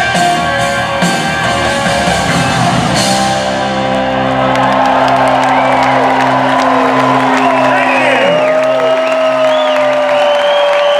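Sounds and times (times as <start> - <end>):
rock band playing: 0.0 - 10.9
crowd whooping and clapping: 3.8 - 10.9.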